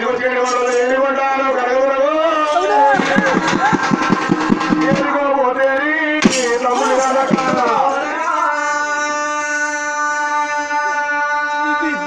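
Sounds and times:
drum beaten in fast rhythm: 2.2s - 9.0s.

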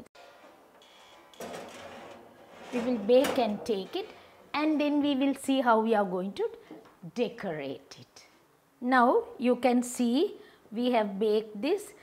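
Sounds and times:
metal tray scraping rattle: 0.2s - 5.4s.

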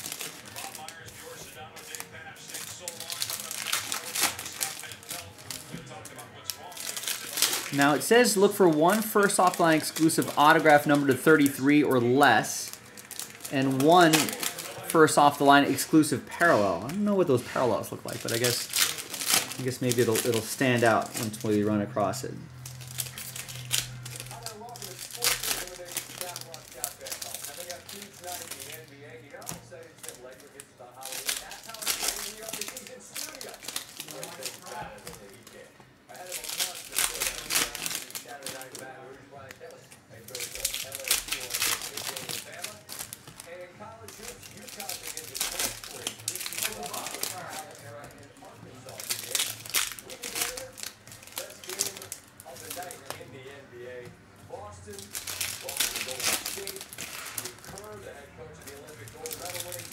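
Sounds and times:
foil wrappers tearing and crinkling: 0.0s - 59.9s.

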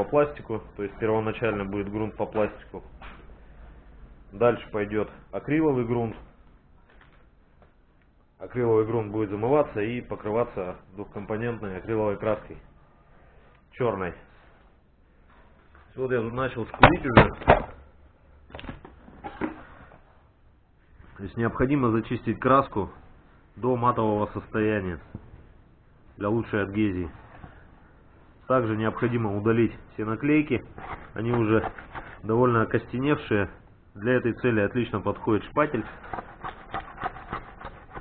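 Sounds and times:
spatula scraping decal off plastic: 35.6s - 38.0s.

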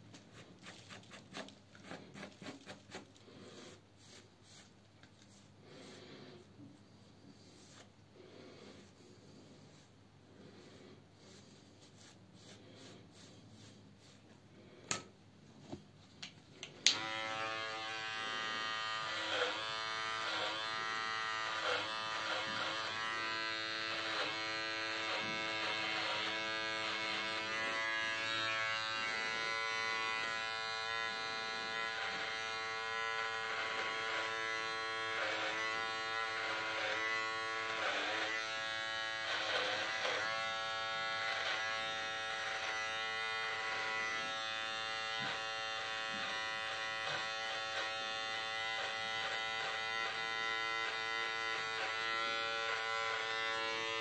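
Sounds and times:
electric beard trimmer buzzing: 16.8s - 54.0s.

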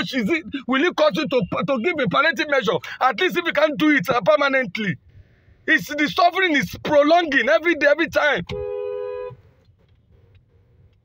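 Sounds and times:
faint traffic rumble: 0.0s - 11.0s
vehicle horn blast: 8.5s - 9.4s.

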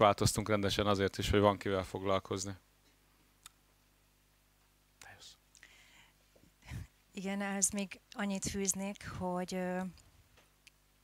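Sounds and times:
faint electrical hum: 0.0s - 11.0s
faint hiss: 0.0s - 11.0s
breathy noise close to microphone: 5.0s - 7.1s.

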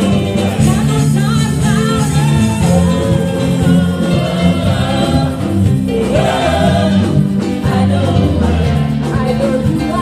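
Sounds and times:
gospel voices singing: 0.0s - 10.0s
held bass notes: 0.0s - 10.0s.

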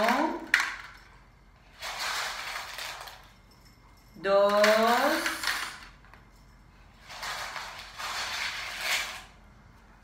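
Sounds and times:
rocks scraping in a bowl: 7.1s - 9.3s.

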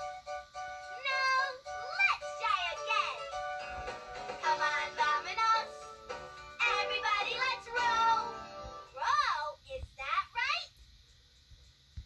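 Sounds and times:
cartoon song music: 0.0s - 9.4s
child singing: 1.0s - 3.3s, 4.3s - 5.9s, 6.6s - 9.6s.

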